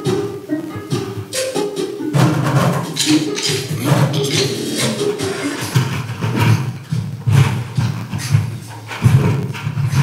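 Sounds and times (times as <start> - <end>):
percussion thumps and hits: 0.0 - 10.0.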